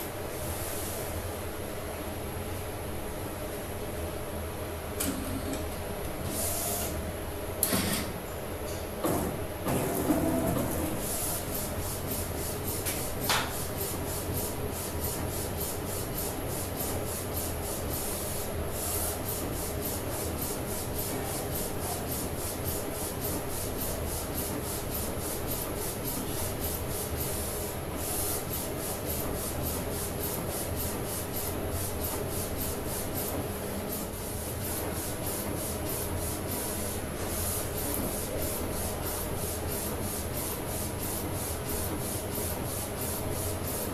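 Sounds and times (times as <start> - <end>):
printer clunks and scrapes: 9.0 - 11.0.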